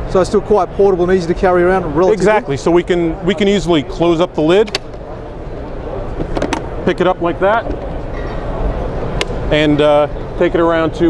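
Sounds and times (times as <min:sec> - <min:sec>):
steady background noise: 0:00.0 - 0:11.0
sharp latch click: 0:04.6 - 0:05.0.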